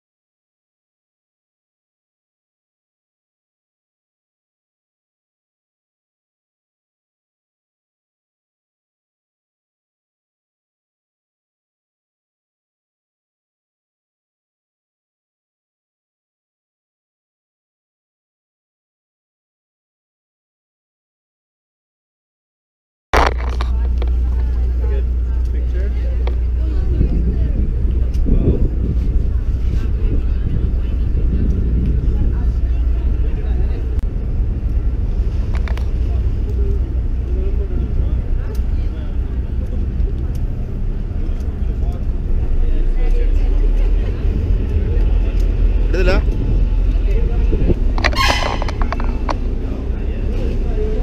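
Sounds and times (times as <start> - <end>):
indistinct voices: 23.2 - 51.0
low rumble: 23.2 - 51.0.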